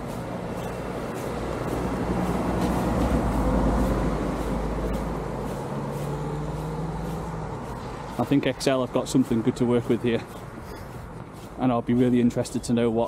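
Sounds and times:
motor vehicle passing: 0:00.0 - 0:13.0.

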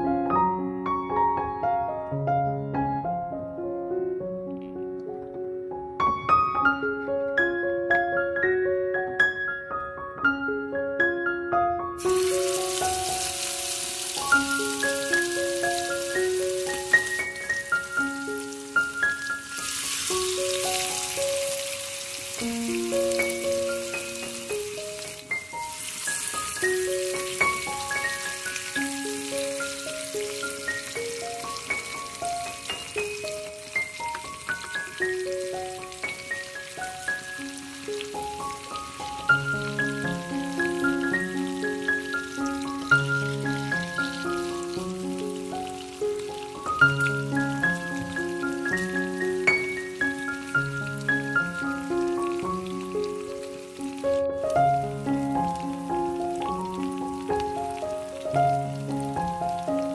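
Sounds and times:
gentle keyboard background music: 0:00.0 - 0:59.9
fish sizzling in a frying pan: 0:12.0 - 0:59.9.

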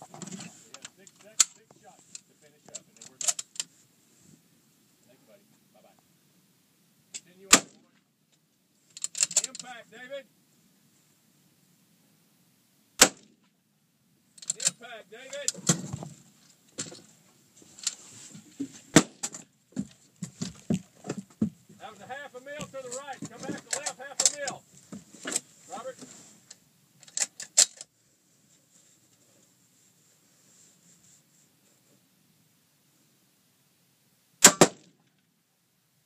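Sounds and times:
rifle shots: 0:07.5 - 0:07.8, 0:13.0 - 0:13.4, 0:34.4 - 0:34.9.

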